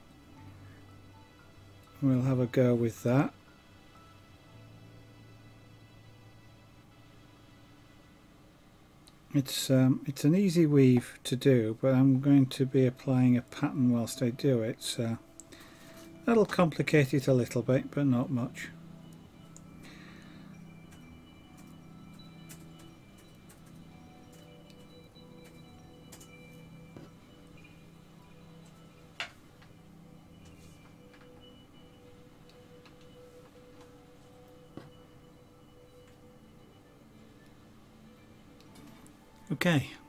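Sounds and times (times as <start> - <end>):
faint background music: 0.0 - 40.0.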